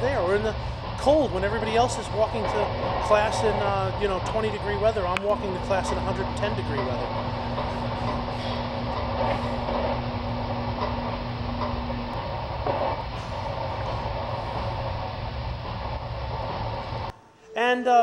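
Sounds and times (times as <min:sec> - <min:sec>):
steam tunnel rumble and hiss: 0:00.0 - 0:17.1
steady hum: 0:00.0 - 0:17.8.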